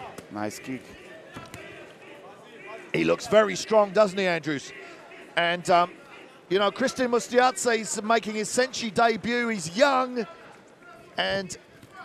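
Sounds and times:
distant voices: 0.0 - 11.1.

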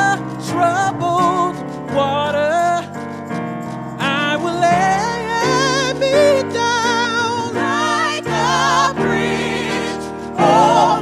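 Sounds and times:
gospel group singing in harmony: 4.4 - 11.0.

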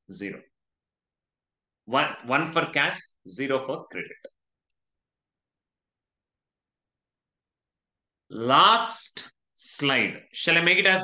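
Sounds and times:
man speaking: 0.0 - 0.5, 1.8 - 4.3, 8.3 - 11.0.

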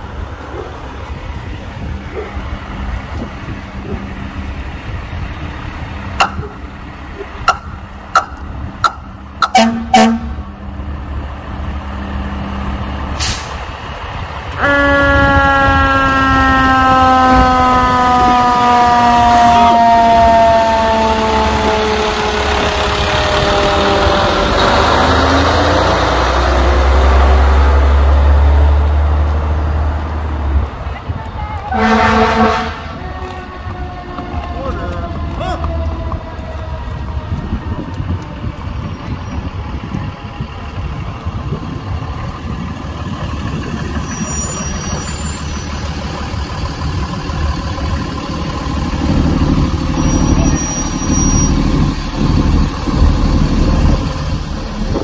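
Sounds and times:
truck engine rumble: 0.0 - 55.0
fire engine warning tone: 7.4 - 10.5, 14.5 - 25.8, 31.7 - 40.4, 43.4 - 55.0
short horn toots: 9.4 - 10.4, 31.7 - 33.0.

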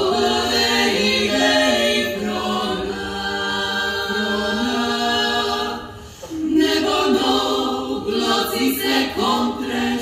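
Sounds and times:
a cappella group singing in harmony: 0.0 - 10.0
singers taking a breath: 5.9 - 6.5.

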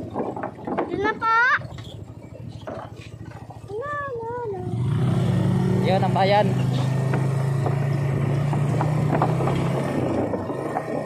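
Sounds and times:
small motorcycle engine running: 0.0 - 11.0.

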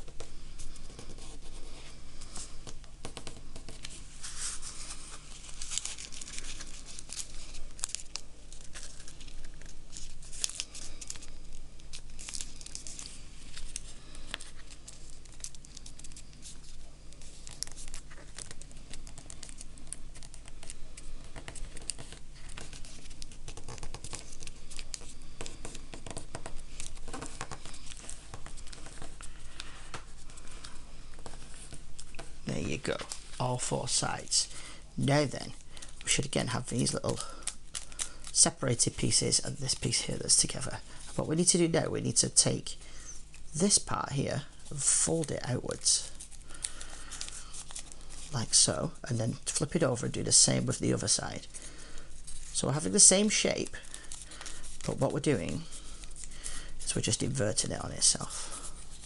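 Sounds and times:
paper crinkling and rustling: 0.0 - 59.0.

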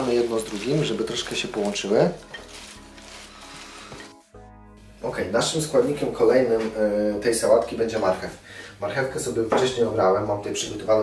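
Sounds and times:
leaves rustling in a dish: 0.0 - 4.2
faint background music: 0.0 - 11.0.

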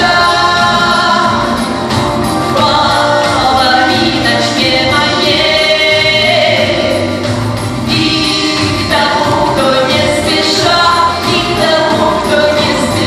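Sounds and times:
instrumental accompaniment: 0.0 - 13.0
woman singing into microphone: 0.0 - 13.0.

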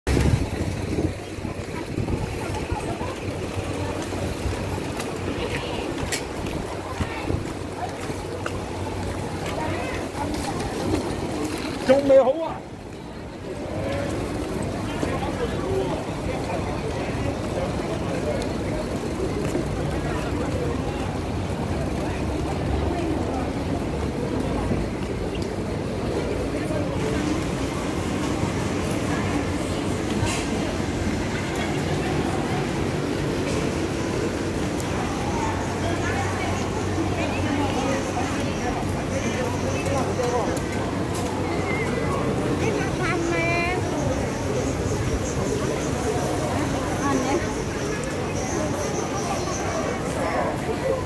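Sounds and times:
chatter of shoppers: 0.0 - 51.0
low street rumble: 0.0 - 51.0
voices of passers-by: 0.1 - 51.0.

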